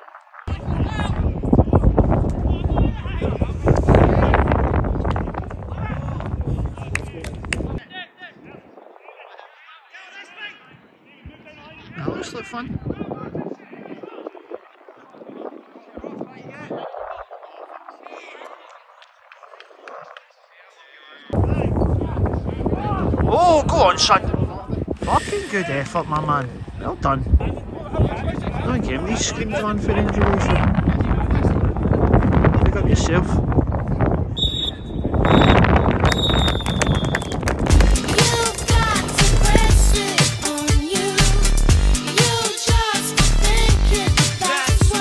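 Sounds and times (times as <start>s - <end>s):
distant shouting of players and spectators: 7.8s - 15.2s
referee's whistle blast: 34.4s - 37.2s
music with heavy beat and singing: 37.7s - 45.0s.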